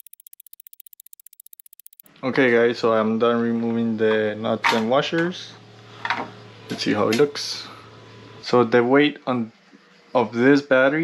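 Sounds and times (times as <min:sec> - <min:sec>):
rapid clock ticking: 0:00.0 - 0:02.1.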